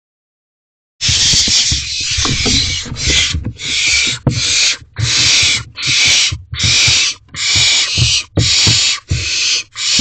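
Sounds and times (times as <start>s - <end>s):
low scuffling thumps: 1.0s - 9.3s
owlets hissing screech: 1.0s - 10.0s.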